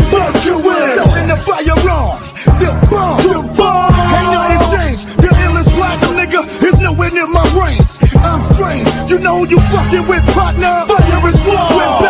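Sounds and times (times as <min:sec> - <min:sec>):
heavy repeating bass line: 0:00.0 - 0:12.0
rapped vocals: 0:00.0 - 0:12.0.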